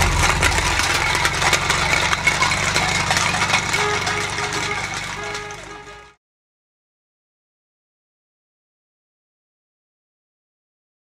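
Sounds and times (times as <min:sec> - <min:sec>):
car engine pulling away: 0:00.0 - 0:06.2
tin cans clattering on asphalt: 0:00.0 - 0:06.2.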